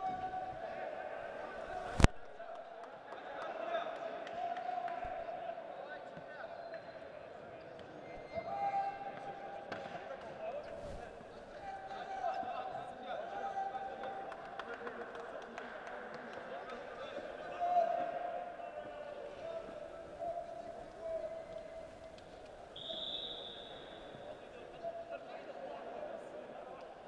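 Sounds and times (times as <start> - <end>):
indistinct voices echoing: 15.6 - 27.0.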